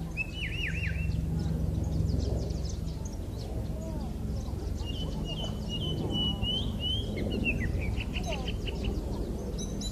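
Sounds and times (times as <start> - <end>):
blackbird singing: 0.0 - 9.9
steady low rumble: 0.0 - 9.9.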